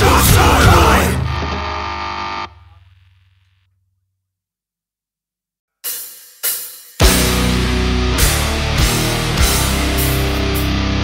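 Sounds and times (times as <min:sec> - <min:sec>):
distorted electric guitar chord: 0:00.0 - 0:03.6, 0:07.0 - 0:11.0.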